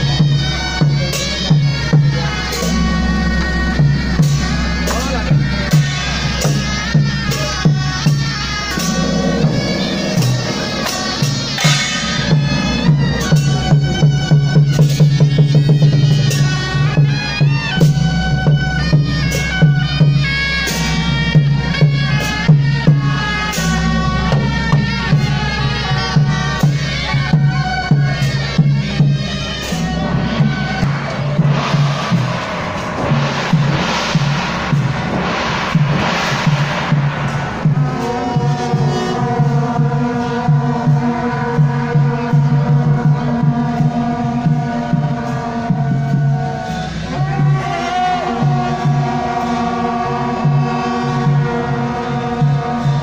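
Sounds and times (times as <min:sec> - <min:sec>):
crowd noise: 0:00.0 - 0:53.0
double-reed horns playing: 0:00.0 - 0:53.0
drum and gong beat: 0:00.0 - 0:53.0.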